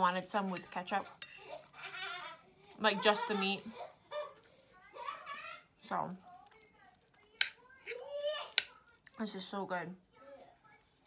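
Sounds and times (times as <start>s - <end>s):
metal spoon clinking on plate: 0.6s - 1.5s.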